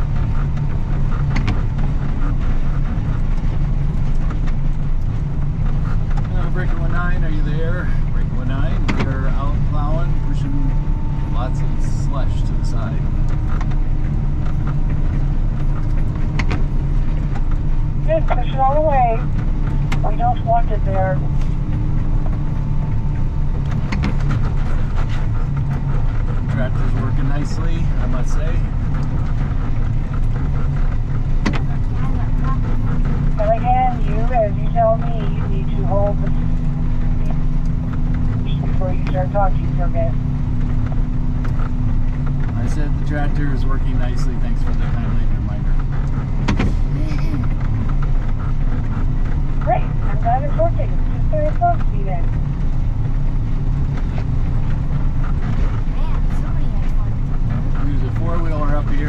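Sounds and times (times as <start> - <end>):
snowplow engine running: 0.0 - 59.0.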